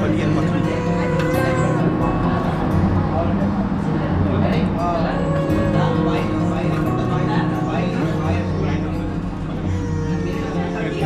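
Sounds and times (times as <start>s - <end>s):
person singing: 0.0s - 2.3s
music with held notes: 0.0s - 11.0s.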